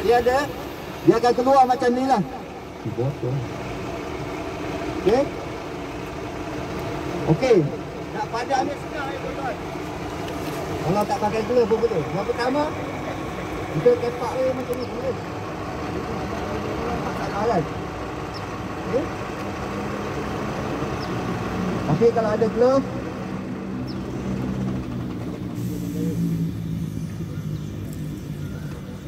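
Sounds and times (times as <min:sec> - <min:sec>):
man speaking: 0:00.0 - 0:03.6, 0:10.7 - 0:15.3
constant low hum: 0:00.0 - 0:19.8
diesel engine idling: 0:00.0 - 0:29.0.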